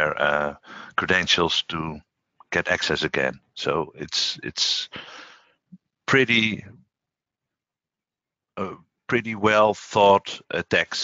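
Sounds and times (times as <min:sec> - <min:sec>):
man saying uh: 0:00.0 - 0:02.0, 0:02.6 - 0:05.3, 0:06.1 - 0:06.7, 0:08.6 - 0:11.0.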